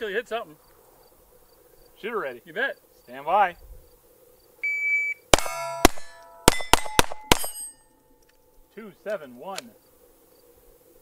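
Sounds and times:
pistol shots: 5.3s - 7.8s
bullets ringing off steel plates: 5.4s - 7.9s.

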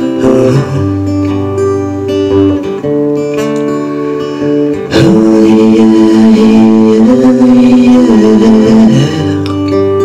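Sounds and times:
man singing wordless note: 0.0s - 1.0s, 4.9s - 9.5s
acoustic guitar chord strummed: 0.0s - 10.0s.

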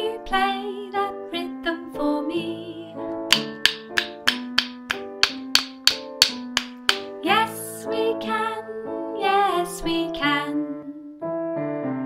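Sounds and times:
backing music: 3.3s - 7.2s
wooden sticks clicking: 3.3s - 7.2s.

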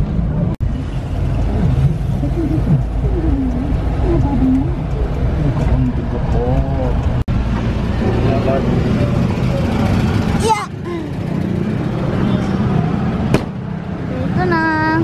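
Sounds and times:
old car engine rumbling: 0.0s - 15.0s
sharp knock: 13.3s - 13.6s.

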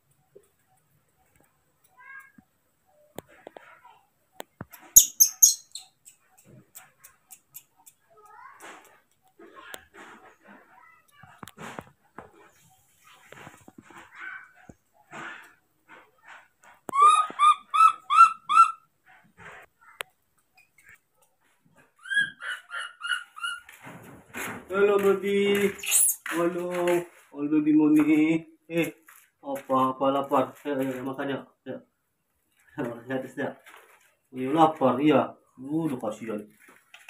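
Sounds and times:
high squeaks: 4.8s - 6.0s, 25.7s - 26.4s
baby macaque crying: 22.0s - 23.7s, 25.8s - 26.2s.

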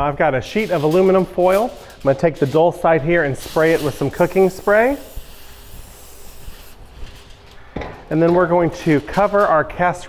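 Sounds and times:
cooking spray hissing: 3.2s - 7.0s.

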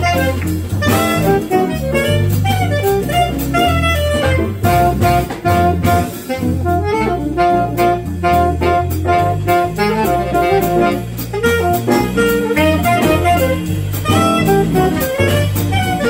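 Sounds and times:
drums: 0.0s - 16.0s
piano: 0.0s - 16.0s
saxophone: 0.0s - 16.0s
walking bass line: 0.0s - 16.0s.

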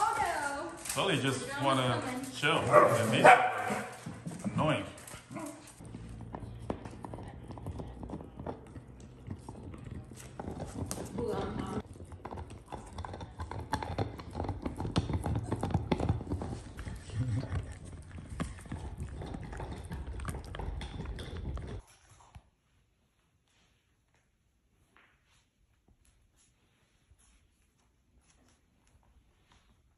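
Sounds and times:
dogs playing: 0.0s - 24.2s
dog vocalizing: 5.8s - 21.8s.

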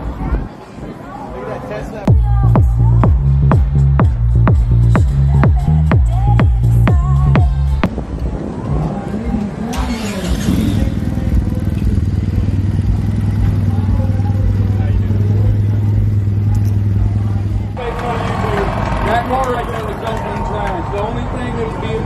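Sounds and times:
crowd noise: 0.0s - 22.0s
people talking: 8.7s - 22.0s
motorcycle trike engine idling: 9.6s - 19.7s.

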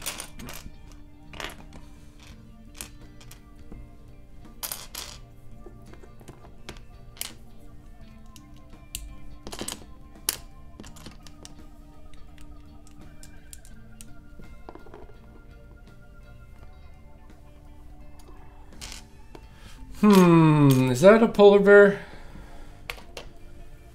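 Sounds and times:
background music with held tones: 0.0s - 23.9s.

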